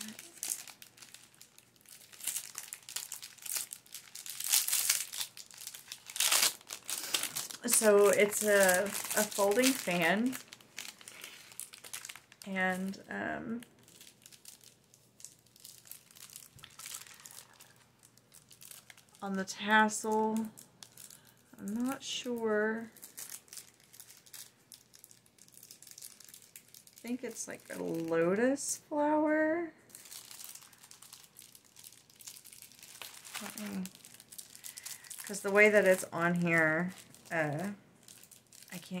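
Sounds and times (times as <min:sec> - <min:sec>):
gift packaging crinkling: 0:00.0 - 0:28.5, 0:29.9 - 0:39.0.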